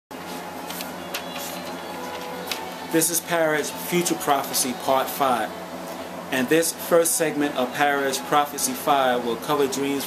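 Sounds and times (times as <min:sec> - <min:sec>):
faint hum: 0:00.2 - 0:10.0.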